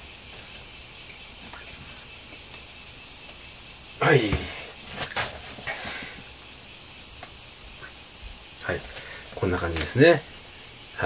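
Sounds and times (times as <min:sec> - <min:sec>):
high-pitched recording hiss: 0:00.0 - 0:11.0.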